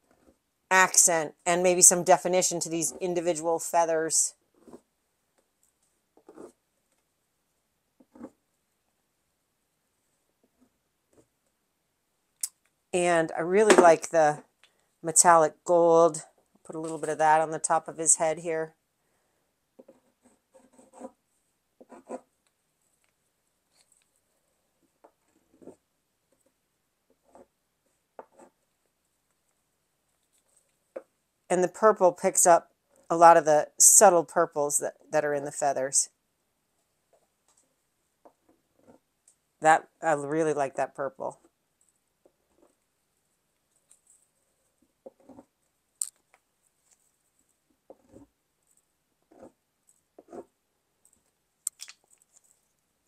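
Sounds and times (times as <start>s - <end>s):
pencil scratching on paper: 6.2s - 6.6s, 19.8s - 21.2s, 21.8s - 22.3s, 50.2s - 50.5s.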